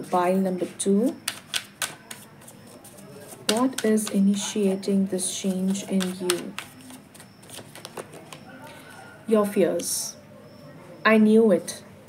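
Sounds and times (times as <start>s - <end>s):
cards snapping while shuffled: 1.3s - 2.3s, 5.5s - 8.4s
deck of cards rustling: 1.3s - 4.5s, 5.3s - 8.5s.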